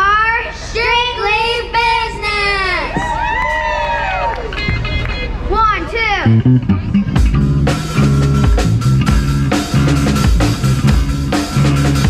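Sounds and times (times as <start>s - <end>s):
girls singing and calling out: 0.0s - 3.2s.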